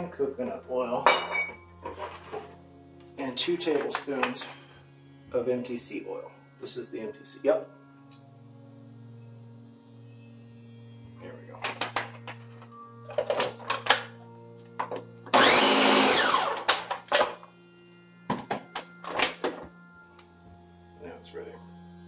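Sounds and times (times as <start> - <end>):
blender motor running: 15.3 - 16.9.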